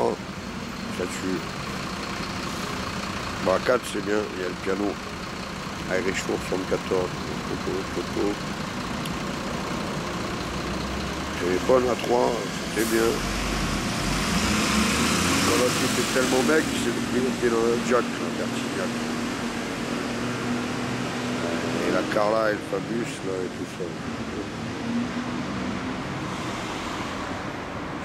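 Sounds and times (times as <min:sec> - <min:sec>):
distant road traffic: 0:00.0 - 0:28.0
street noise: 0:00.0 - 0:28.0
vehicle engine rumbling: 0:00.0 - 0:28.0
person speaking: 0:05.9 - 0:08.4.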